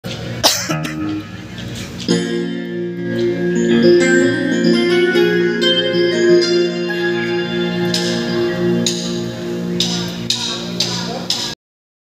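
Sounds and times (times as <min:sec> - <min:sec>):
person coughing: 0:00.4 - 0:01.0
held instrument notes: 0:00.7 - 0:11.4.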